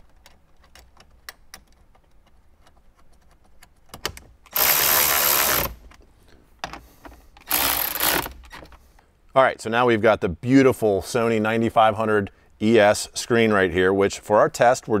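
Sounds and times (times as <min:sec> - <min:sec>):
electric ratchet motor: 0:04.5 - 0:05.8, 0:07.4 - 0:08.5.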